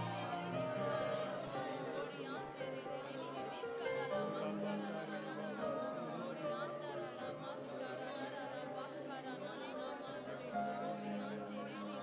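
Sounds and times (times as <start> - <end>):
many voices praying aloud: 0.0 - 12.0.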